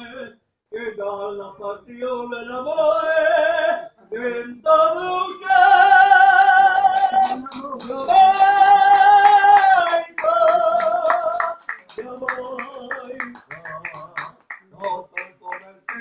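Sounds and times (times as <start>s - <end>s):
singing with accompaniment: 0.0s - 16.0s
audience clapping in rhythm: 5.8s - 16.0s.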